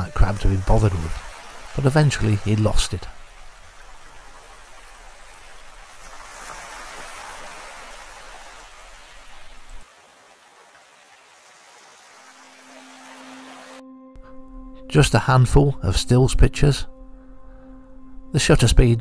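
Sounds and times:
water lapping over pebbles: 0:00.6 - 0:13.7
held musical tone: 0:12.6 - 0:19.0.

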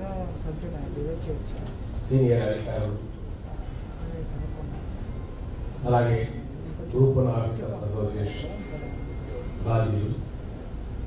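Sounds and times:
man speaking into a microphone: 0:02.1 - 0:03.2, 0:05.8 - 0:08.5, 0:09.6 - 0:10.3.

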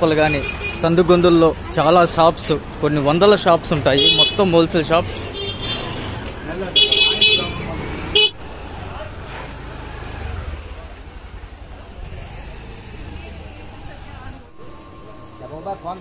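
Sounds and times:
busy street noise: 0:00.0 - 0:16.0
voices: 0:00.0 - 0:16.0
motorbike horn honking: 0:04.0 - 0:04.5, 0:06.8 - 0:08.4.

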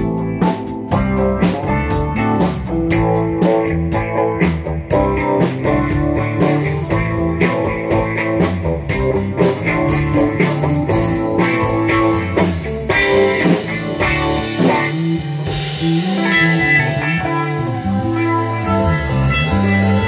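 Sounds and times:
bass guitar: 0:00.0 - 0:20.0
drum kit: 0:00.0 - 0:20.0
electric guitars: 0:00.0 - 0:20.0.

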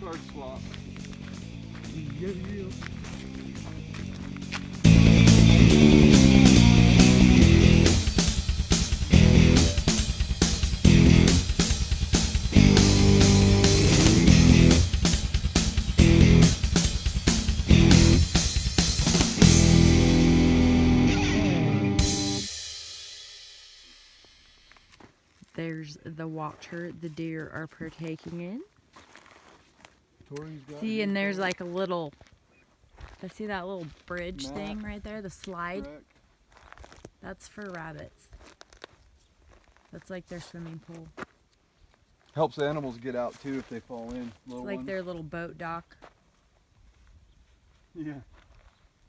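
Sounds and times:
band music with guitar and drums: 0:00.0 - 0:22.8.

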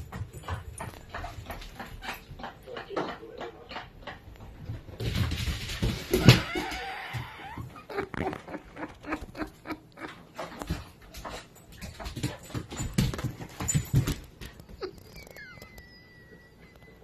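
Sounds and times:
paws scrabbling on wet floor: 0:00.0 - 0:15.0.

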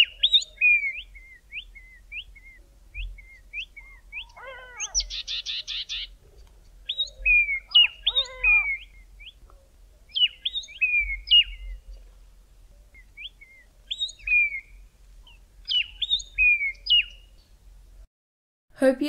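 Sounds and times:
lower bird call: 0:00.0 - 0:12.0, 0:12.7 - 0:17.4
tits singing: 0:00.0 - 0:17.6.

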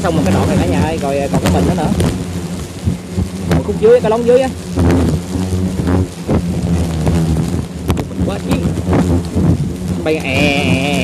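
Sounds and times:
hornets buzzing: 0:00.0 - 0:11.0.

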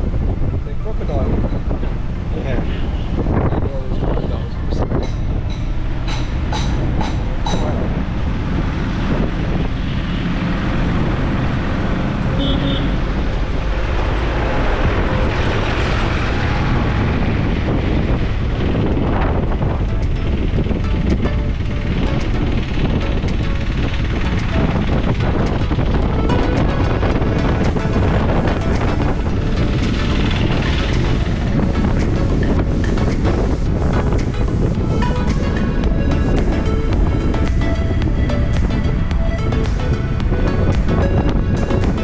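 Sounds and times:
car engine and road noise: 0:00.0 - 0:42.0
wind buffeting microphone: 0:00.0 - 0:42.0.

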